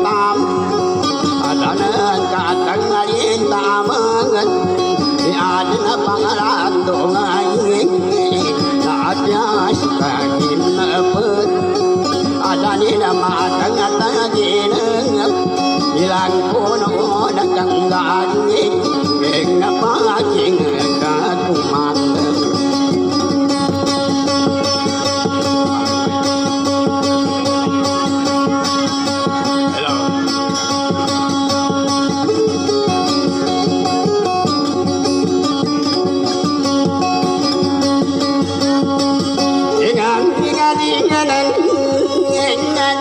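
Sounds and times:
person singing: 0:00.0 - 0:23.7, 0:39.6 - 0:43.0
plucked string instrument: 0:00.0 - 0:43.0.

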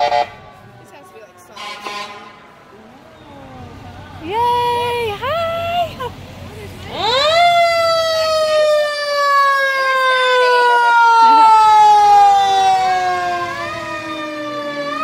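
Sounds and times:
fire truck siren wailing: 0:00.0 - 0:03.0, 0:06.9 - 0:15.0.

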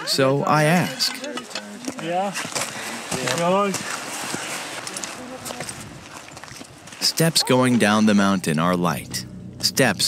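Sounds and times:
footsteps on rocky trail: 0:01.3 - 0:07.6.

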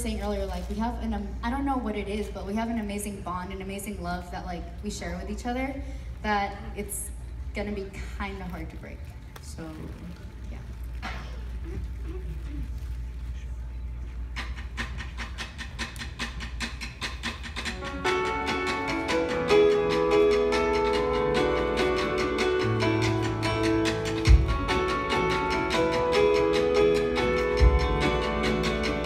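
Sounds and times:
live band playing: 0:14.4 - 0:29.0.

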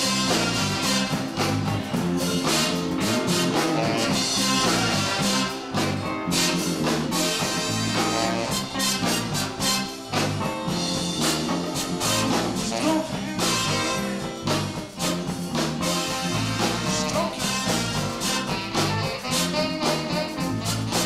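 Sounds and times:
bass line: 0:00.0 - 0:21.0
live band playing: 0:00.0 - 0:21.0.

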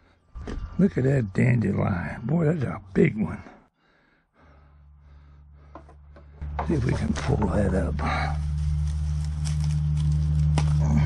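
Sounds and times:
steady low hum: 0:02.0 - 0:11.0
leaves rustling and snapping: 0:06.8 - 0:11.0.

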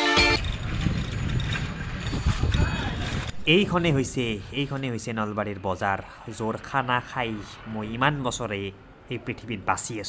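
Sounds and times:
motor traffic rumble: 0:00.0 - 0:10.0
street bustle: 0:00.0 - 0:10.0.

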